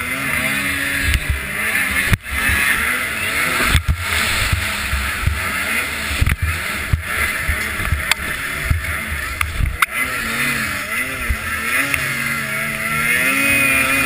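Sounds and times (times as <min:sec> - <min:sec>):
snowmobile engine running hard: 0:00.0 - 0:14.0
wind buffeting microphone: 0:01.0 - 0:10.4.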